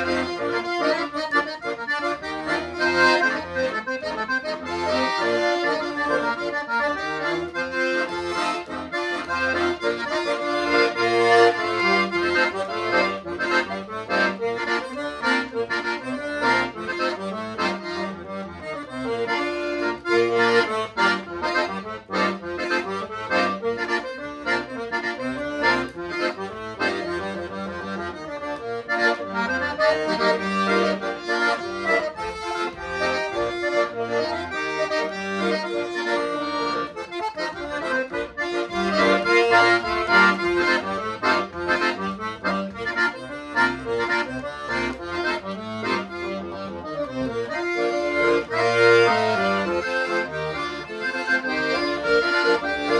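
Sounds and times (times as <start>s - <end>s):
piano accordion playing a tune: 0.0s - 52.9s.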